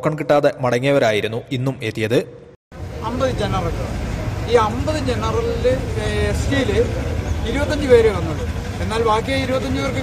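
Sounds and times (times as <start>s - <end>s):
men talking in a crowd: 2.8s - 10.0s.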